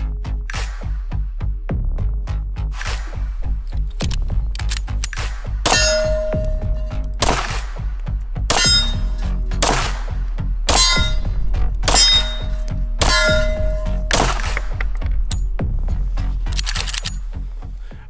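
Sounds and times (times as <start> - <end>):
music with pulsing bass: 0.0 - 18.0
ringing metallic clang hits: 5.7 - 7.1, 8.5 - 9.8, 10.7 - 14.5.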